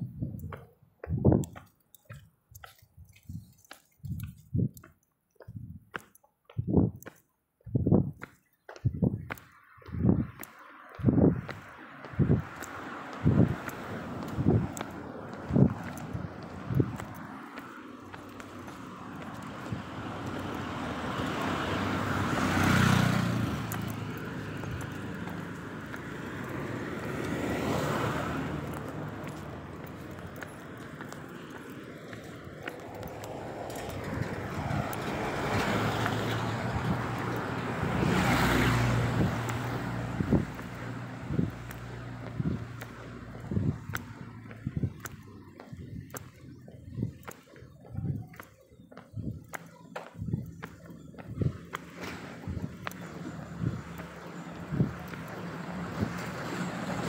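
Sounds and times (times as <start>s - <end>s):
road traffic rushing: 8.2s - 57.0s.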